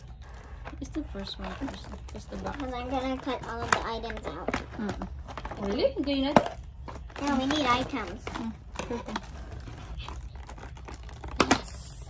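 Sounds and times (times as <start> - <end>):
packaging clicks and rustles: 0.0 - 12.0.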